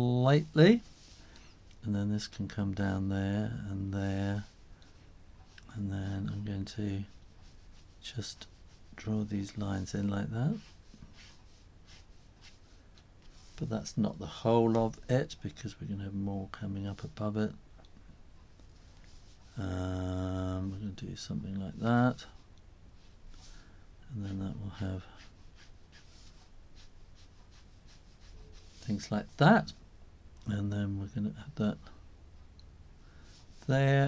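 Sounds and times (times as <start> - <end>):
man speaking: 0.0 - 0.9, 1.8 - 4.5, 5.7 - 7.2, 8.0 - 10.7, 13.6 - 17.6, 19.6 - 22.4, 24.1 - 25.2, 28.8 - 29.8, 30.4 - 32.0, 33.6 - 34.0
room hum: 0.0 - 34.0.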